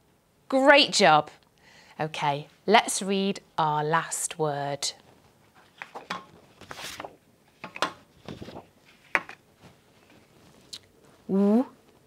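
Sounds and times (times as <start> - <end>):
paper cards rustling and sliding: 5.4 - 10.7.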